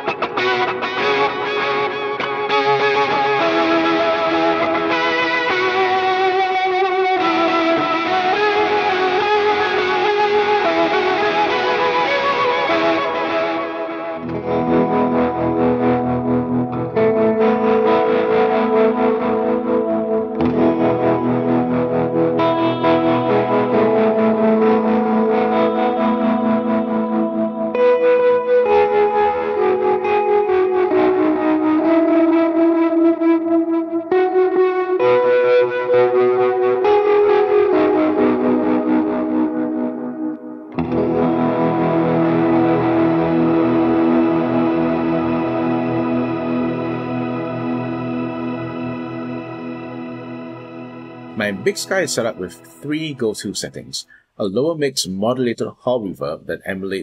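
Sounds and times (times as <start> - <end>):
electric guitar with echo: 0.0 - 54.7.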